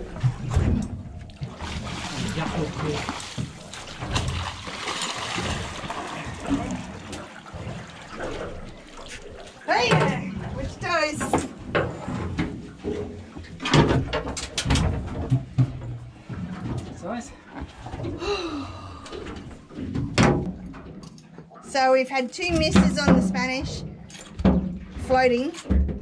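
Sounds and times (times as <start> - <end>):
knocks and thuds on metal boat: 0.0 - 8.5, 9.7 - 17.2, 19.8 - 20.9, 22.4 - 26.0.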